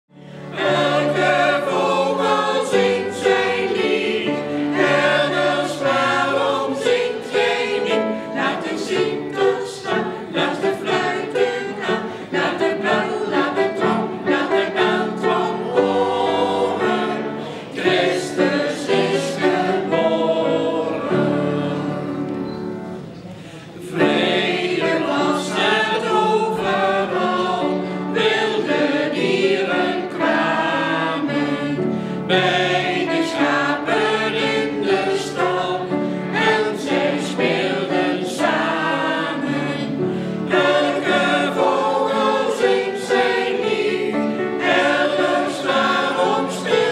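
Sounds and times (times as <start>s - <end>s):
upright piano: 0.1s - 46.9s
choir singing: 0.2s - 46.9s.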